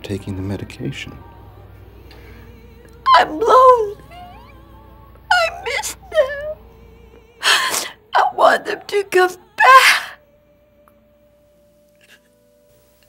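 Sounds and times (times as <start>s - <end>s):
woman crying and sobbing: 3.0s - 4.7s, 5.3s - 6.6s, 7.4s - 10.2s.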